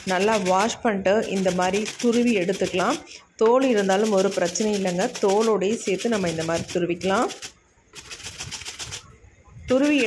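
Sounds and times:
potato rasping on a grater: 0:00.0 - 0:03.0, 0:03.6 - 0:09.1, 0:09.7 - 0:10.0.

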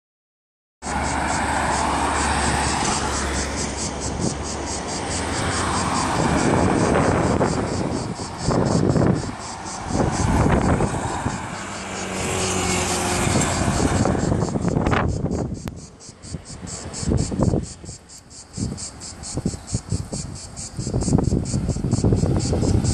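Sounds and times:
cars passing: 0:00.8 - 0:22.9
road traffic noise: 0:00.8 - 0:22.9.

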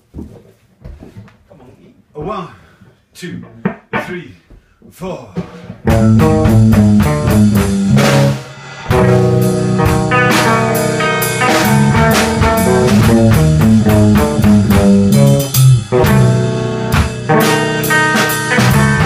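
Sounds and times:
drum kit: 0:05.1 - 0:19.0
electric bass: 0:05.8 - 0:19.0
electric guitar: 0:05.8 - 0:19.0.

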